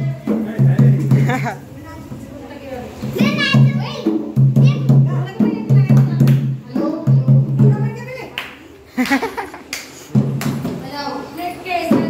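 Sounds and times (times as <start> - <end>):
hand drum beating: 0.0 - 1.5, 3.1 - 8.1.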